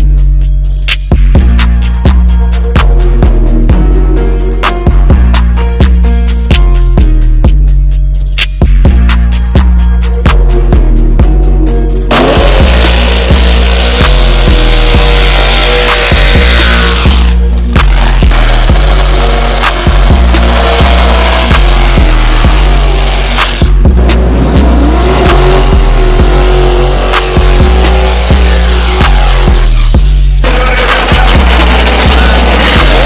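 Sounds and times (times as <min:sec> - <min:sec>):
music with heavy bass line: 0:00.0 - 0:33.0
race car engines revving: 0:12.1 - 0:33.0
tyres squealing: 0:26.2 - 0:33.0.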